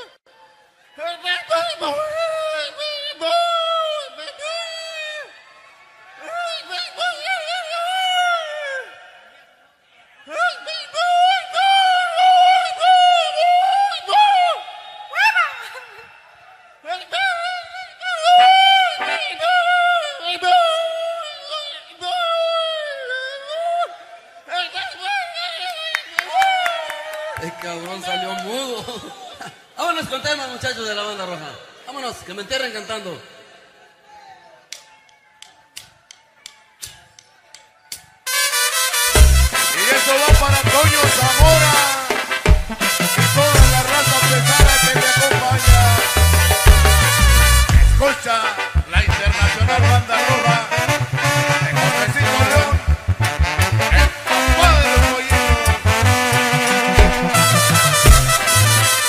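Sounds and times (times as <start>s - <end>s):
band music: 38.3s - 59.0s.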